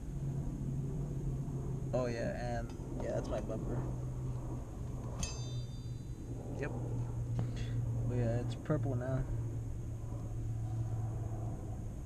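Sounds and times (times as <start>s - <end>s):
steady low hum: 0.0s - 12.0s
finger clinking metal exhaust tip: 5.0s - 6.1s.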